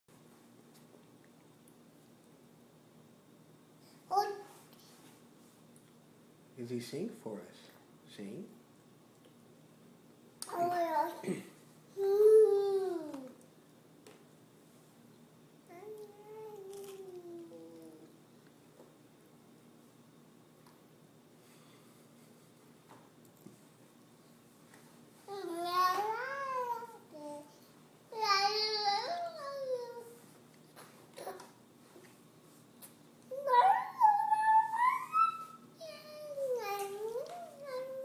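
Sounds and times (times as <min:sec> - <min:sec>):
toddler squealing high note: 0:33.4 - 0:36.2.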